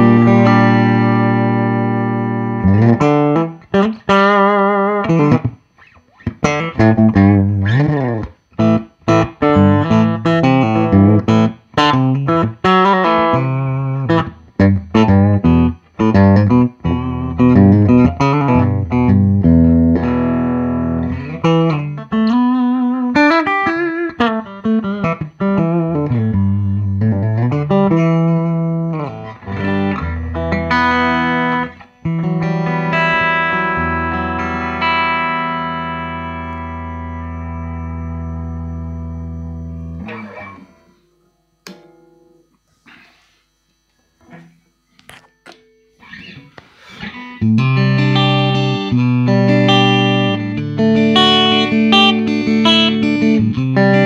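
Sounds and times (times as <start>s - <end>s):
electric guitar playing: 0.0s - 43.0s, 44.2s - 54.0s.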